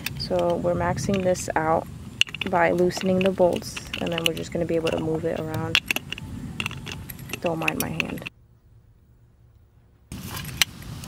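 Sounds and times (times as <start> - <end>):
metal parts clinking: 0.0 - 8.3
sharp clicks: 0.0 - 8.3
steel plate and bolts knocking: 0.0 - 8.3.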